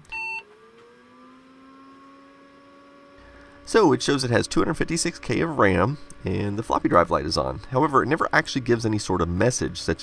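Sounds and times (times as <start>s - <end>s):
computer hum rising in pitch: 0.0s - 10.0s.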